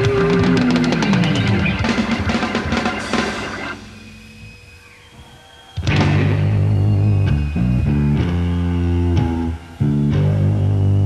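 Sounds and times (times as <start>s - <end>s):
live rock band playing loud: 0.0s - 4.2s, 5.8s - 10.7s.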